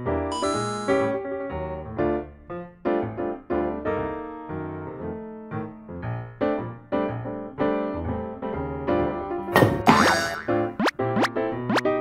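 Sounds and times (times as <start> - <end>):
music with repeated notes: 0.0 - 1.8
upward-sliding comic tones: 9.6 - 11.9.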